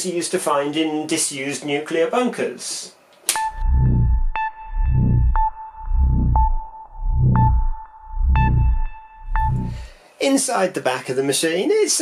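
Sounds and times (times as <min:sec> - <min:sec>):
sharp electronic ticks: 0:03.3 - 0:09.8
steady high tone: 0:03.4 - 0:10.0
low throbbing swell: 0:03.5 - 0:09.9.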